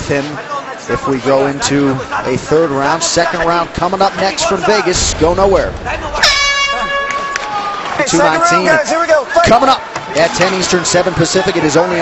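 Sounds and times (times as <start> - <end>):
high-pitched arena horn: 6.2 - 7.7.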